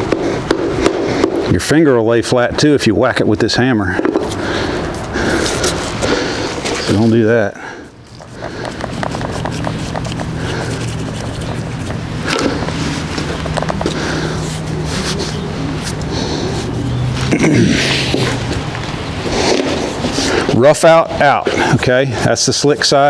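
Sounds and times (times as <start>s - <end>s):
steady low hum: 0.0s - 23.0s
leather rubbing and scraping: 4.1s - 7.3s, 8.0s - 20.6s
leather dragged across concrete: 4.2s - 7.2s, 8.2s - 20.6s.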